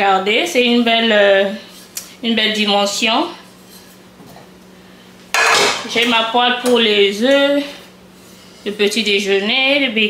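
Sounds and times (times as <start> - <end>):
frying pan clattering on glass: 5.4 - 6.0.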